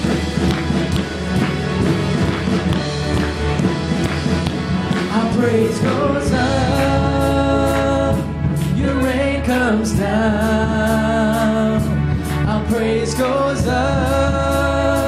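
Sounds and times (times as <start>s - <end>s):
worship band playing upbeat song: 0.0s - 15.0s.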